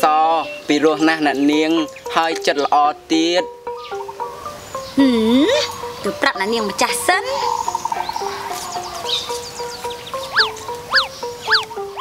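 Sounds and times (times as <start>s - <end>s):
film music with held notes: 0.0s - 12.0s
whistle-like chirps: 10.2s - 12.0s.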